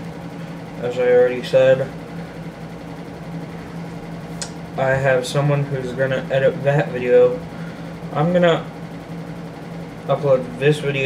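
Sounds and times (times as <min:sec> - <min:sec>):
electric fan humming: 0:00.0 - 0:11.0.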